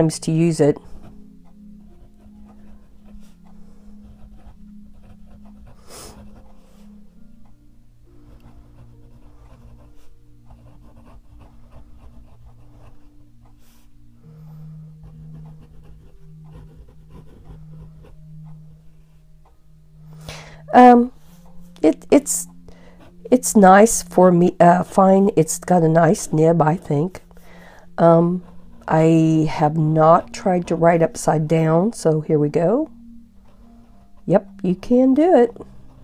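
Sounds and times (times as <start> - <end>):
soft background music: 0.0 - 36.0
pen nib scratching paper: 0.8 - 6.9, 8.2 - 13.9, 15.0 - 18.2, 28.0 - 31.2.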